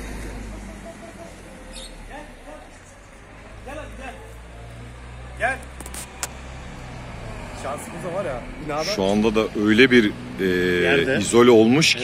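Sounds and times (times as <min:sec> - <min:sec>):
car engine rumble: 0:00.0 - 0:12.0
voices: 0:00.2 - 0:12.0
sharp clicks: 0:05.6 - 0:06.4.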